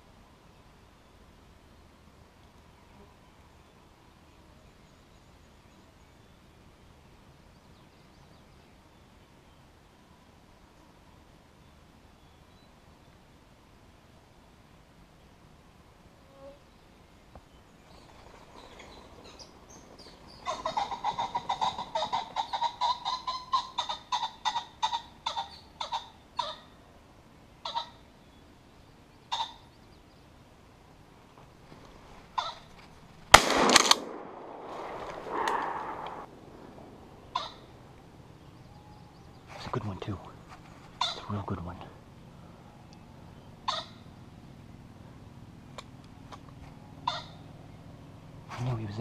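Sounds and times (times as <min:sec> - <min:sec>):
loud shotgun blast: 0:33.3 - 0:37.2
quick repeated calls: 0:33.4 - 0:37.8.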